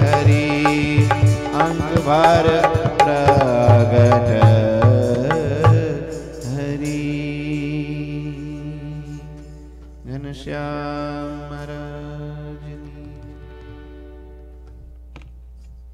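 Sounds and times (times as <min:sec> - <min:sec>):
tabla strokes: 0:00.0 - 0:06.7
harmonium chord: 0:00.0 - 0:07.4, 0:12.1 - 0:14.9.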